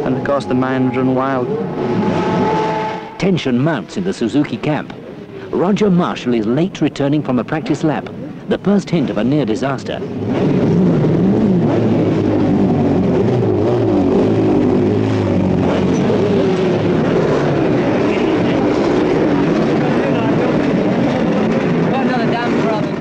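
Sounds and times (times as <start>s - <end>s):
motorcycle engines revving: 0.0s - 6.3s, 7.6s - 23.0s.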